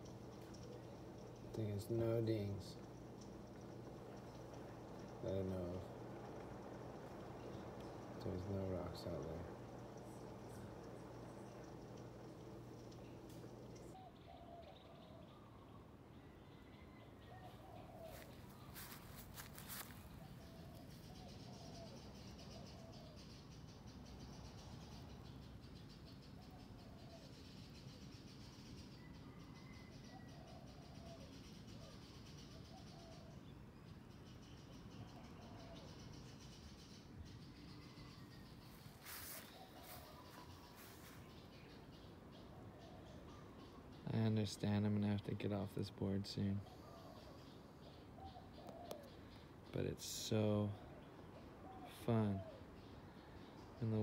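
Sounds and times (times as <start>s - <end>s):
birds chirping faintly: 0.0s - 54.0s.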